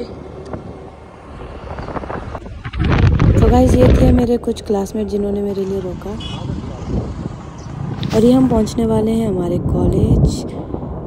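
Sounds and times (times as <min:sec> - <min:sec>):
motorcycle engine rumble: 0:00.0 - 0:11.0
rushing air: 0:09.6 - 0:11.0.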